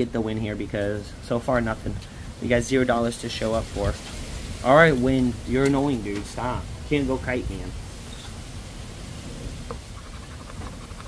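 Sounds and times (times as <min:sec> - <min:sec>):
wind rumble on microphone: 0:01.6 - 0:11.0
coin scratching lottery ticket: 0:09.9 - 0:11.0.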